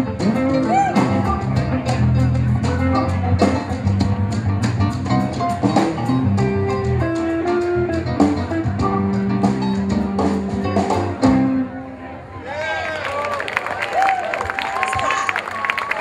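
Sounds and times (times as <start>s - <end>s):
drums: 0.0s - 11.7s
keyboard: 0.0s - 12.4s
bass: 0.0s - 16.0s.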